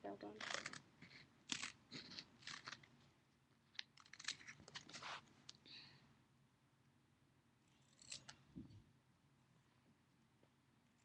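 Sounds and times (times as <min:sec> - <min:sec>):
scissors cutting tape: 0:00.4 - 0:02.9, 0:07.8 - 0:08.4.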